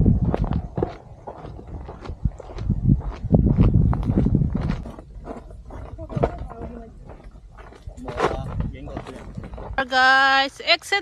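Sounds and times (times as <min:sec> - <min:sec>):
footsteps scuffing on gravel: 0:00.2 - 0:09.8.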